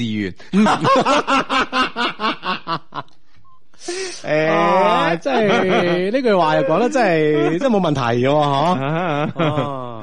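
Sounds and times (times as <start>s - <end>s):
person laughing: 8.7s - 10.0s.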